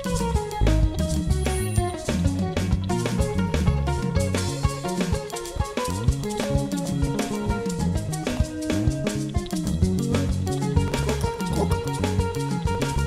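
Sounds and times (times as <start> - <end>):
drums: 0.0 - 13.0
electric bass guitar: 0.0 - 13.0
guitar: 0.0 - 13.0.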